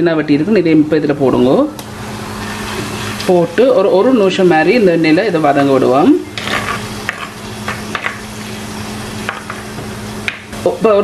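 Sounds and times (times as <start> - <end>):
garlic sizzling in hot oil: 1.9 - 11.0
wooden spoon scraping a pot: 6.4 - 7.4.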